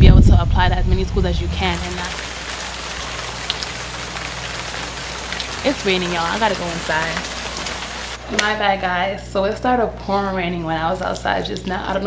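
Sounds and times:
rain pattering on ground: 1.6 - 8.4.

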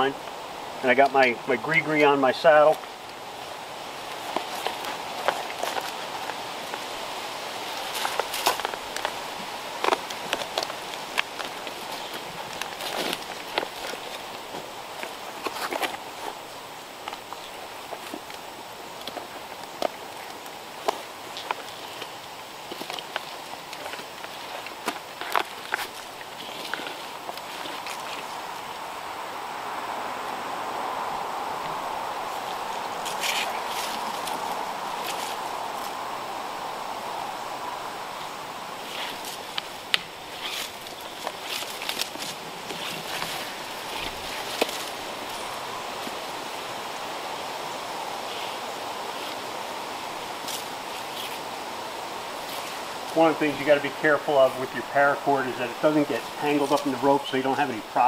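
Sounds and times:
steady outdoor hiss: 0.0 - 58.0
boots shifting on climbing stick: 4.0 - 28.8, 32.2 - 36.0, 38.8 - 46.3, 52.4 - 58.0.

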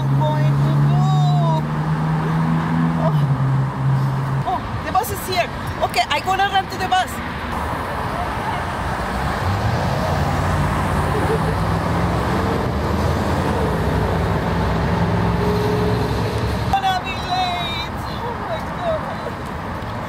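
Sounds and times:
street traffic: 0.0 - 20.0
bus engine drone: 7.3 - 17.1.

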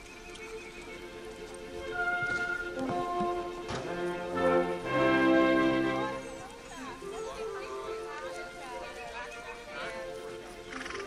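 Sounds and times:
background music: 0.0 - 11.0
people talking: 5.7 - 11.0.

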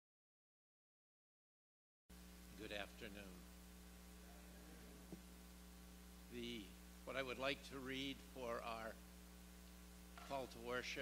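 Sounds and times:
electrical mains hum: 2.1 - 11.0.

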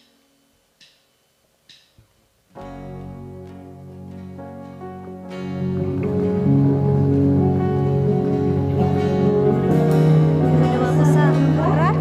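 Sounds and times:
band playing keyboard and guitar: 2.6 - 12.0.

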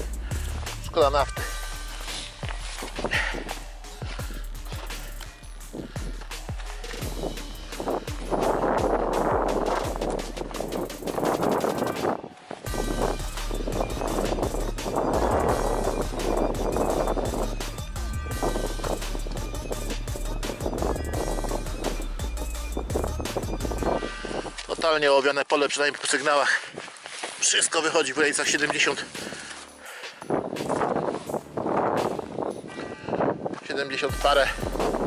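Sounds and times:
footsteps crunching on frozen ground: 0.0 - 21.9, 22.9 - 35.0.

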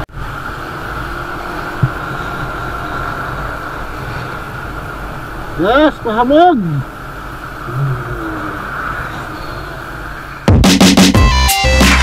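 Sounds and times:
motorcycle engine tyres and wind: 0.0 - 10.5.

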